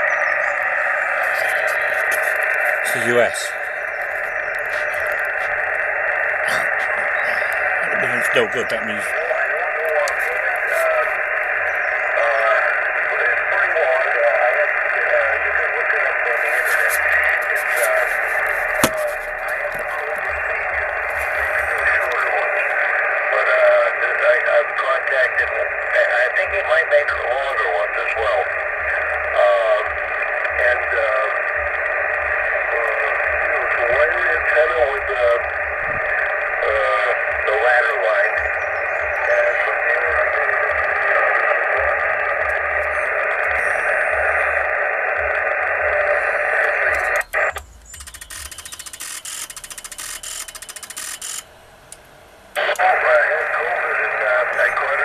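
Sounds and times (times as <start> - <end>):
radio hiss: 0.0 - 55.0
narrow-band radio speech: 0.4 - 51.4, 52.6 - 55.0.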